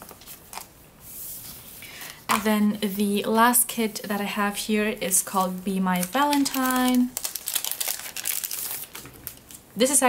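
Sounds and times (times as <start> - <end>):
plastic sleeve crinkling: 5.1 - 9.6.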